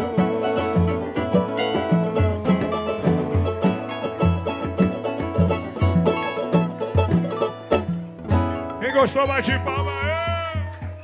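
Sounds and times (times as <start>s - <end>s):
steady low beat: 0.0s - 7.4s
acoustic guitar: 0.0s - 11.0s
banjo strumming: 0.0s - 11.0s
pandeiro: 0.0s - 11.0s.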